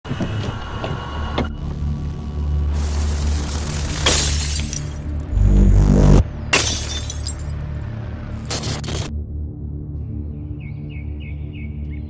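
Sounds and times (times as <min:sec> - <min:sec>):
low steady drone: 0:01.4 - 0:04.1, 0:04.9 - 0:06.6.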